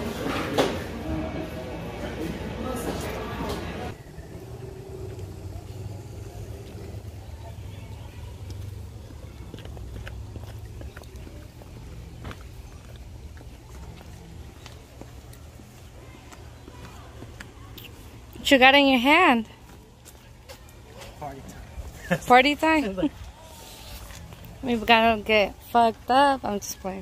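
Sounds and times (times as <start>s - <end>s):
indoor room chatter: 0.0s - 27.0s
steady low rumble: 3.9s - 15.8s
footsteps on stone steps: 8.3s - 18.0s.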